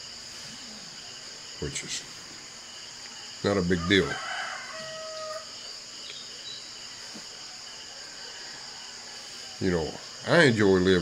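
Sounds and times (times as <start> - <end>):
insects chirping: 0.0 - 11.0
rooster crowing: 3.2 - 5.6, 7.4 - 9.6.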